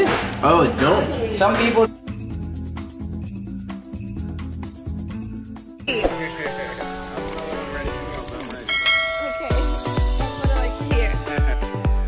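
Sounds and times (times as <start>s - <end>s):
background music: 0.0s - 12.0s
bright bell chime: 8.7s - 10.2s.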